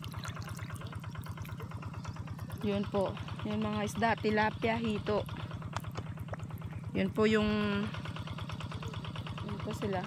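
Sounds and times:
distant small engine throbbing: 0.0s - 10.0s
water clicks and ticks: 0.0s - 10.0s.

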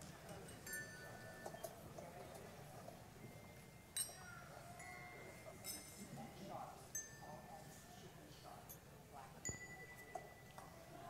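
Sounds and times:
low room murmur: 0.0s - 11.0s
handbells ringing: 0.3s - 1.8s, 3.2s - 6.0s, 6.9s - 7.6s, 9.4s - 11.0s.

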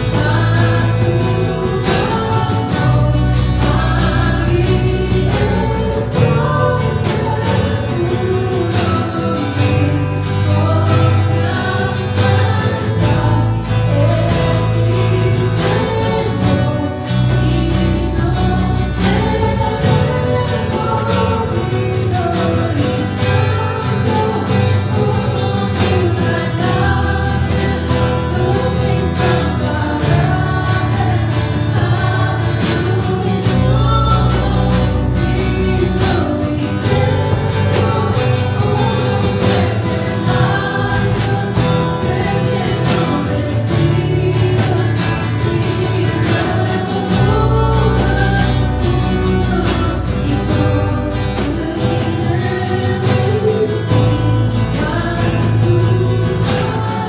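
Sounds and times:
acoustic and electric guitar: 0.0s - 57.0s
drums keeping a steady beat: 0.0s - 57.0s
woman singing lead: 0.0s - 57.0s.

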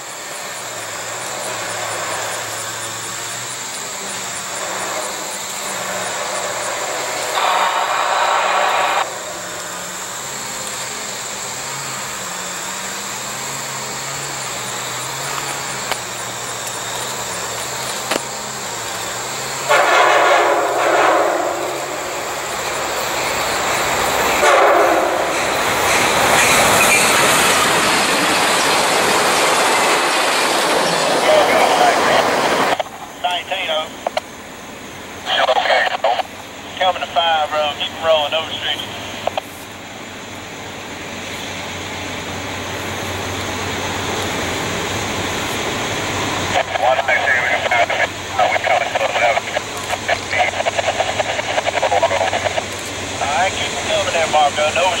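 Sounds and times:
train engine and rail noise: 0.0s - 55.0s
train horn blasts: 4.6s - 10.1s, 19.6s - 23.4s, 24.0s - 27.1s.

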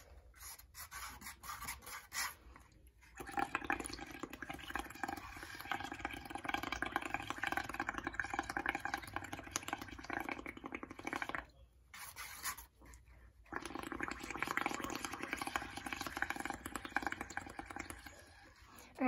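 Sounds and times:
bubbling through a straw: 2.7s - 19.0s.

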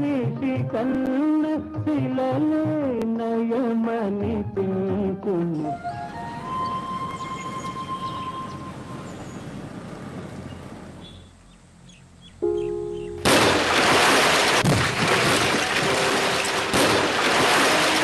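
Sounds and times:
soundtrack music with sustained tones: 5.2s - 9.1s, 12.4s - 13.6s.

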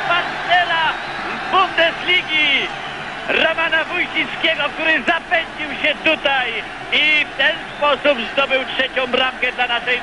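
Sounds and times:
man commentating excitedly: 0.0s - 2.7s, 3.3s - 10.0s
stadium crowd noise: 0.0s - 10.0s.

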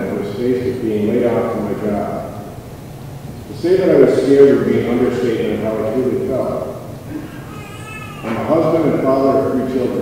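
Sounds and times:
high-pitched child's cry: 7.1s - 9.2s
man speaking over microphone: 8.2s - 10.0s.

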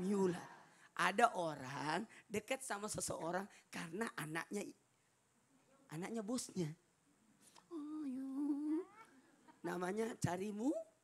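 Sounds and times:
person humming into microphone: 7.6s - 9.1s.

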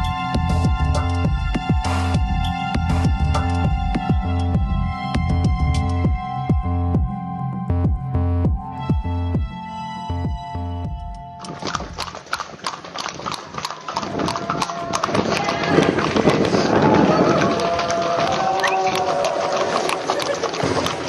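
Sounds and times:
electronic music: 0.0s - 11.4s
horses' hooves on pavement: 11.4s - 21.0s
people calling: 13.7s - 21.0s.

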